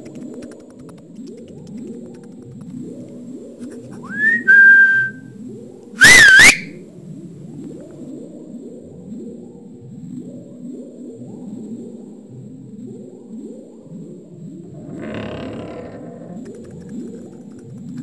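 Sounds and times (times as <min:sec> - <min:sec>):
person whistling: 0:04.0 - 0:05.2, 0:06.0 - 0:06.7.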